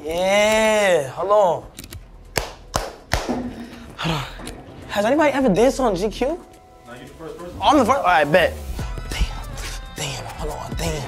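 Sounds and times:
sharp snaps: 1.7s - 3.5s.

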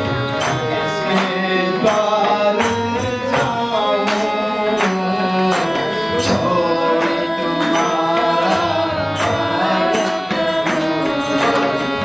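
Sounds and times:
harmonium chords: 0.0s - 12.0s
person singing melody: 0.0s - 12.0s.

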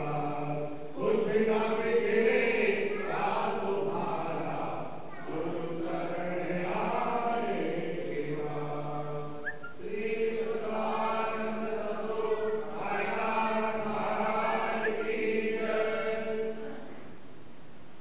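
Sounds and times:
group of voices chanting: 0.0s - 9.2s, 9.8s - 16.9s.

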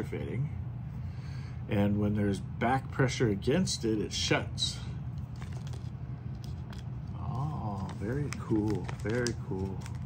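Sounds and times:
low room hum: 0.0s - 10.0s
plastic bag crinkling: 5.2s - 10.0s.

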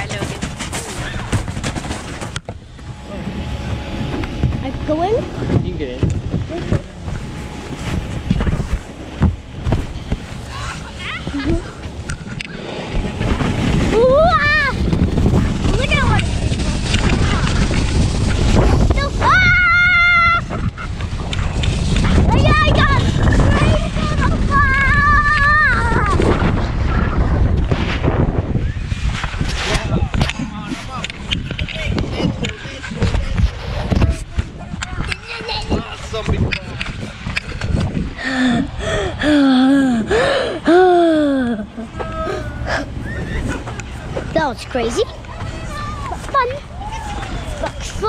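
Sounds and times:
snow tube rumbling on snow: 0.0s - 38.2s
wind on microphone: 0.0s - 48.0s
thumps and rubbing on camera: 3.6s - 13.8s.

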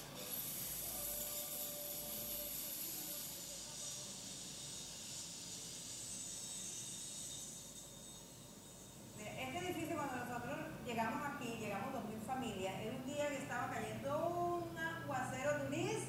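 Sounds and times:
high-pitched film soundtrack hiss: 0.0s - 9.6s.

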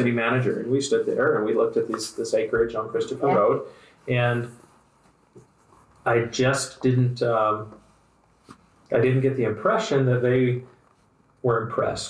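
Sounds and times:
man saying a word: 1.1s - 4.5s.

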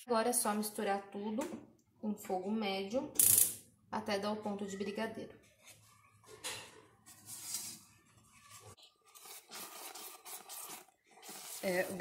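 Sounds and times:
wooden spoon scraping a saucepan: 5.6s - 12.0s.

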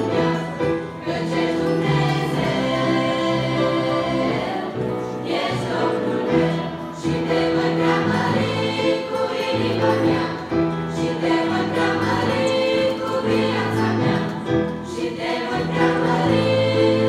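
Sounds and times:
girls' choir singing: 0.0s - 17.0s.

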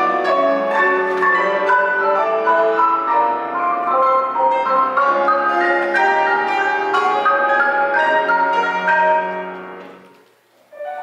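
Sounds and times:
marimba played with mallets: 0.0s - 9.5s.

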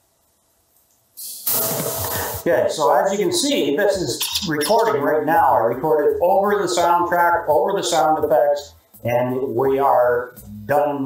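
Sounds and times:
rising hiss: 1.2s - 3.2s
loud noisy sound effect: 1.4s - 2.8s.

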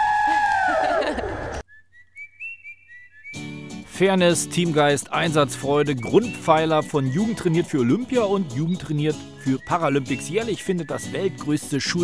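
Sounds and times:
girls cheering: 0.0s - 1.6s
short whistled notes: 1.6s - 3.8s, 5.4s - 11.5s.

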